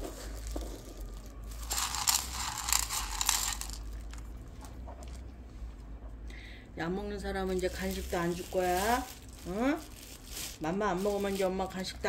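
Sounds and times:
dogs crunching dry food: 0.0 - 5.3.

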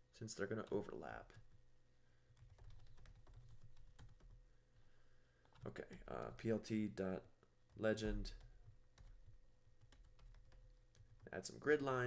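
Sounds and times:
typing on computer keyboard: 2.3 - 4.4, 7.7 - 11.3.

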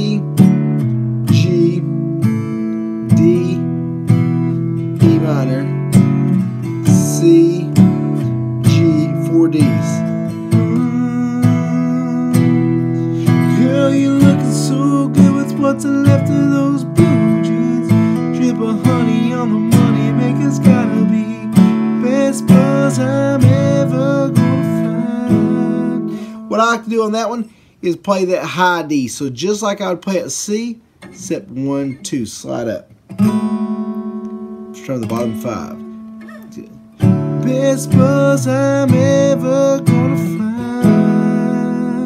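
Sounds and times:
man singing: 0.0 - 0.4, 1.3 - 3.8, 5.0 - 5.8, 6.8 - 27.5, 36.5 - 42.0
acoustic guitar strumming: 0.0 - 42.0.

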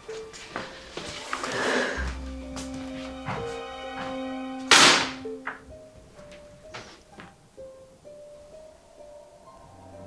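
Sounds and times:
soft background music: 0.0 - 10.0
picture frame crashing on table: 4.7 - 5.2.

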